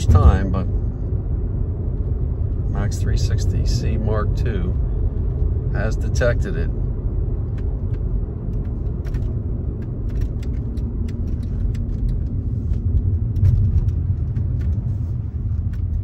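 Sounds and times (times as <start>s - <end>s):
car cabin road rumble: 0.0s - 16.0s.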